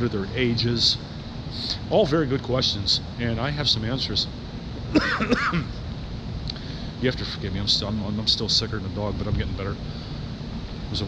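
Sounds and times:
low hum of city street: 0.0 - 11.0
man coughing: 4.9 - 5.8.

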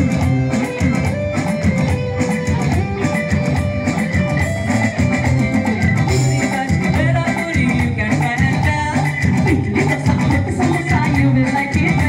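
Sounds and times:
bass guitar: 0.0 - 12.0
drum kit: 0.0 - 12.0
electric guitar melody: 0.0 - 12.0.

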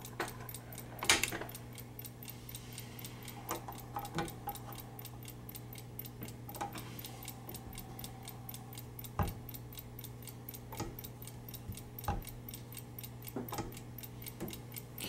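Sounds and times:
clock movement ticking fast: 0.0 - 15.0
metal clicks and knocks: 0.1 - 1.6.

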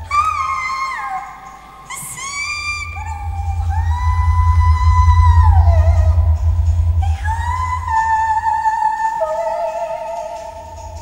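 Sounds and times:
fast-pulsing low drone: 2.6 - 9.2, 10.4 - 11.0.

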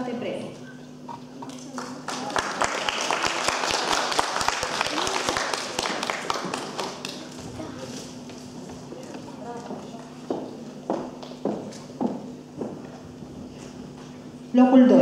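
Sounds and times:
audience applauding: 1.7 - 7.4.

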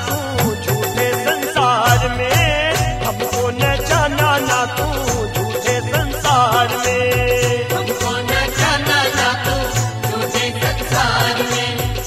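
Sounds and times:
devotional music with steady beat: 0.0 - 12.0.

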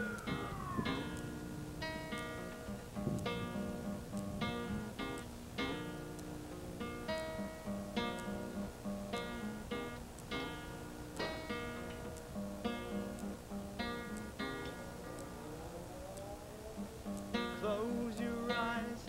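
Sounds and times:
acoustic guitar strumming: 0.0 - 15.5, 16.8 - 19.0.

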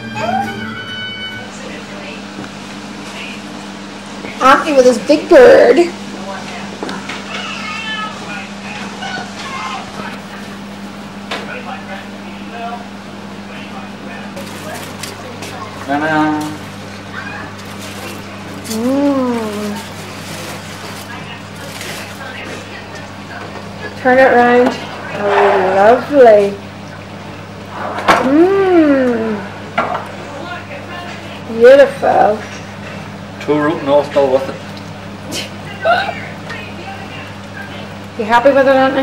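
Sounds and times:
faint voices: 0.0 - 34.6, 35.2 - 39.0
steady low hum: 0.0 - 39.0.

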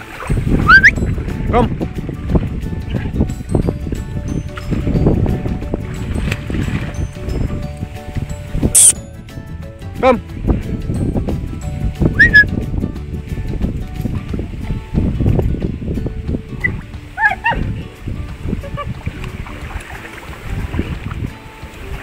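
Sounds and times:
water sloshing and splashing: 0.0 - 8.8, 13.1 - 22.0
short pitched calls: 8.8 - 9.0.

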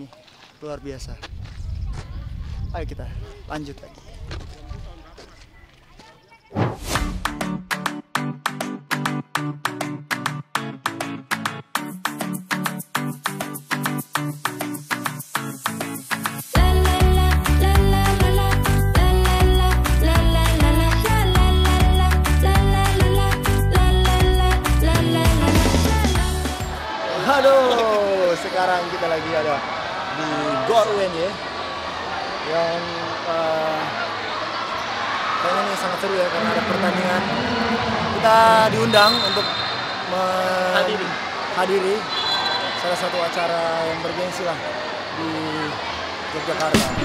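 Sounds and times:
loud swoosh effect: 6.6 - 7.4
music: 6.9 - 26.9
men talking: 27.1 - 31.4, 32.4 - 34.0, 35.4 - 42.1, 42.7 - 47.0.

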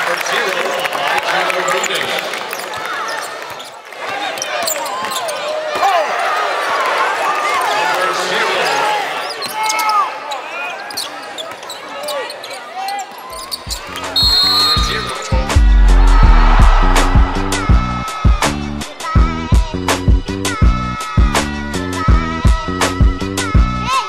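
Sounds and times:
arena crowd and player voices: 0.0 - 24.0
sneakers squeaking: 2.5 - 5.7, 8.6 - 15.5
music with low repeating beat: 15.3 - 18.5.

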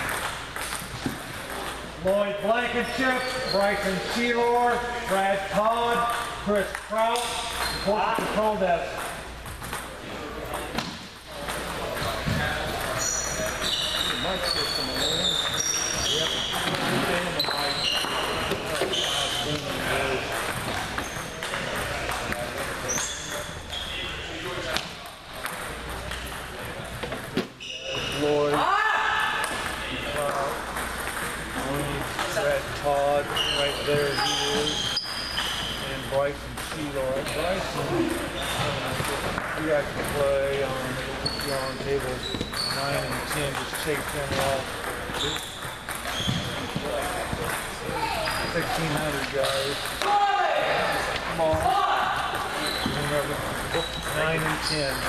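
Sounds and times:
people talking: 10.0 - 26.9, 29.6 - 30.6, 31.5 - 35.0, 35.8 - 45.4, 46.4 - 55.0.

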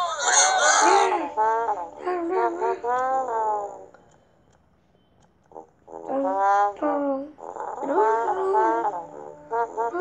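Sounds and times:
child making vocal sounds: 0.0 - 3.2, 6.0 - 10.0.

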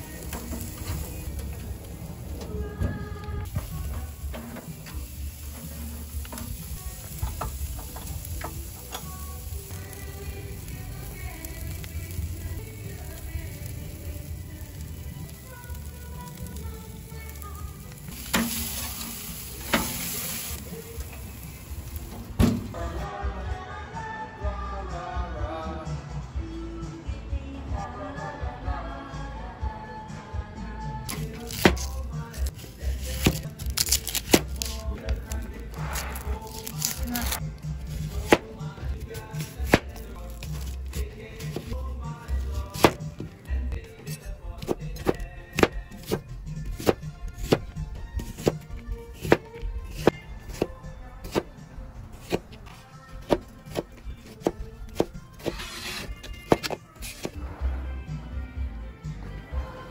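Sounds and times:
background music: 0.0 - 59.9
knife chopping on plastic board: 42.7 - 43.0, 44.6 - 46.2, 46.8 - 48.6, 49.2 - 51.5, 56.5 - 57.3.

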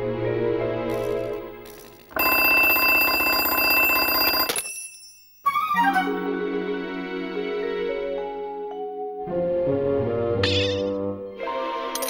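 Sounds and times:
mechanical alarm clock ringing: 2.1 - 5.7.

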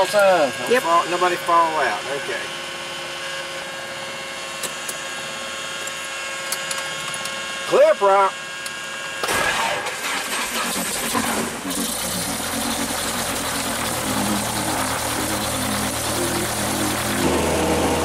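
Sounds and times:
piston engine starting and running: 9.2 - 18.0.

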